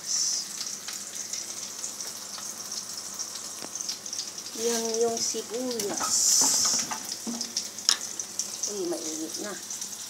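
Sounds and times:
onion and garlic sizzling in oil: 0.0s - 10.0s.

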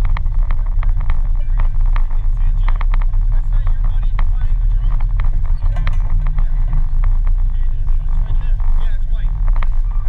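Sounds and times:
light clicks and rattles: 0.0s - 10.0s
wind and road noise rumble: 0.0s - 10.0s.

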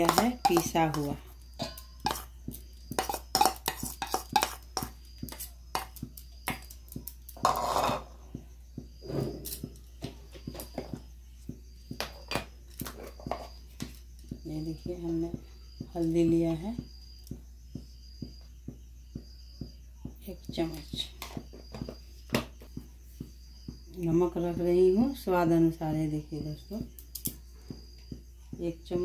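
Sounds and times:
metal spoon scraping steel bowl: 0.0s - 2.3s, 2.9s - 6.0s, 7.4s - 8.1s.

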